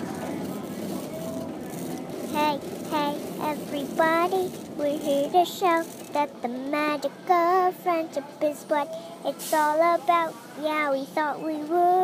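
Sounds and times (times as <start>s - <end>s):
busy store background noise: 0.0s - 12.0s
faint voices: 0.0s - 12.0s.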